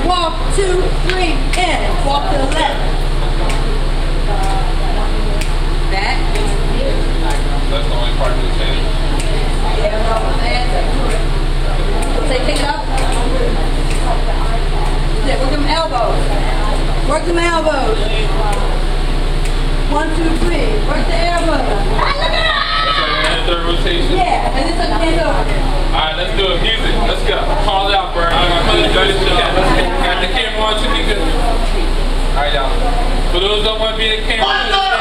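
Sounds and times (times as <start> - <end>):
indistinct voices talking: 0.0 - 35.0
steady low hum: 0.0 - 35.0.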